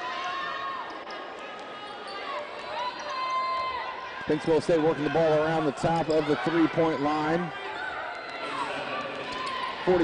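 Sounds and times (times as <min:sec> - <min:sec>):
arena noise: 0:00.0 - 0:10.0.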